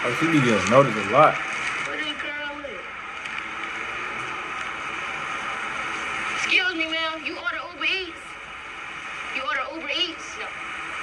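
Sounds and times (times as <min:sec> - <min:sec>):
outdoor background hiss and rumble: 0:00.0 - 0:11.0.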